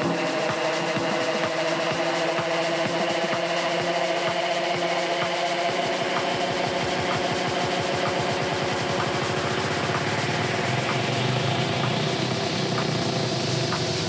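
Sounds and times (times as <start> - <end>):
hi-hat ticks: 0.0 - 14.0
low electronic pulse: 0.0 - 14.0
synth drone: 0.0 - 14.0.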